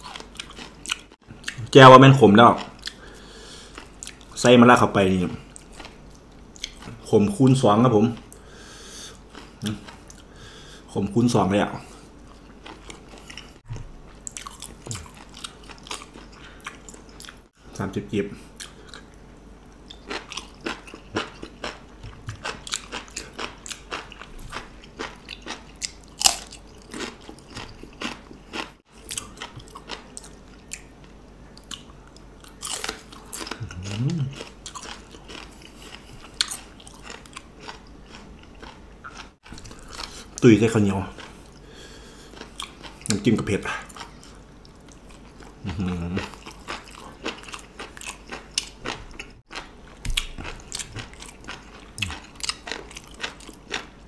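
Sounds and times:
chewing and crunching raw food: 0.0s - 4.4s, 5.3s - 8.5s, 9.1s - 10.3s, 11.9s - 17.6s, 18.4s - 54.0s.

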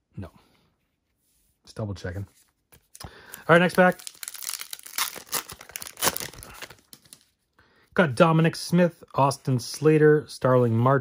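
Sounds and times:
wrapper tearing and crinkling: 3.5s - 7.2s.

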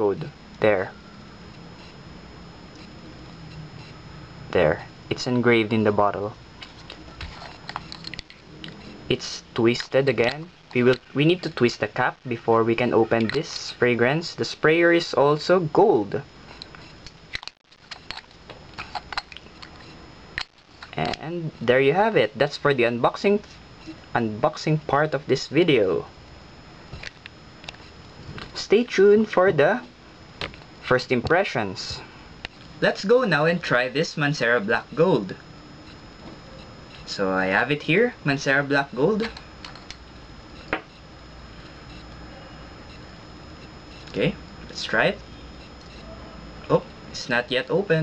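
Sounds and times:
low room hiss: 0.0s - 48.0s.

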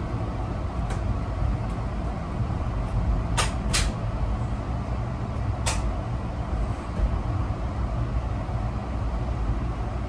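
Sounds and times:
passenger train car rumble: 0.0s - 10.0s
train car ticks and creaks: 0.8s - 4.1s, 5.3s - 6.1s.

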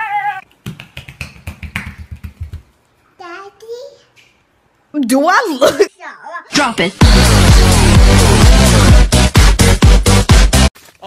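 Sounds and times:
bare footsteps on tile: 0.6s - 2.8s.

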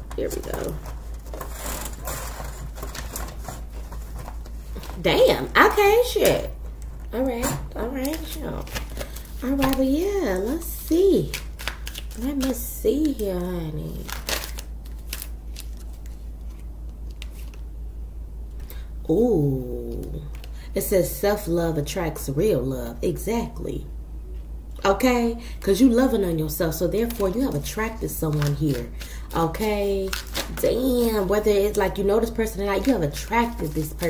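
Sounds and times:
steady low hum: 0.0s - 34.0s
cards clicking and rustling: 7.8s - 9.9s, 11.2s - 13.3s, 14.1s - 17.6s.

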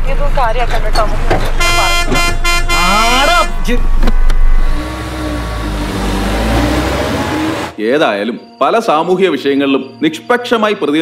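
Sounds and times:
engine rumble: 0.0s - 7.8s
car horn: 1.4s - 6.2s.

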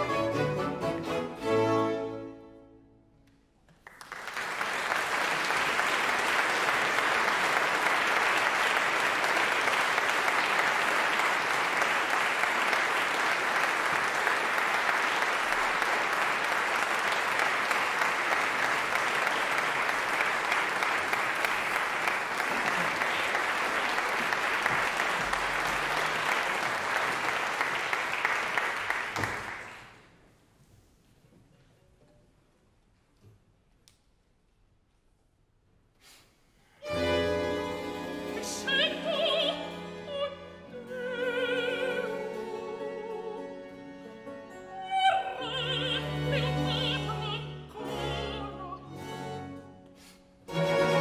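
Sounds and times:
audience applauding: 3.7s - 30.2s.

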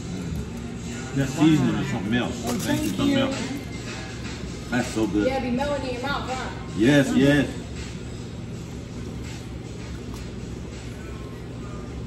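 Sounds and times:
faint background music: 0.0s - 12.0s
restaurant low hum: 0.0s - 12.0s.

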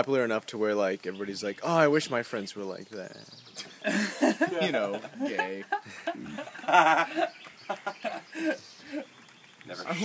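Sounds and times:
man laughing: 3.6s - 9.1s.

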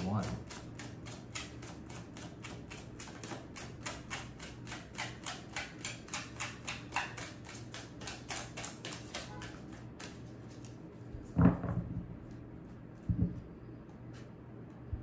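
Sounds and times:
cards being shuffled: 0.2s - 11.3s.

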